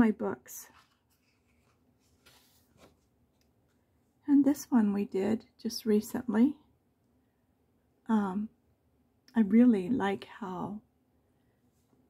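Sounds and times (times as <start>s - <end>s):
paper page turning: 0.7s - 3.1s.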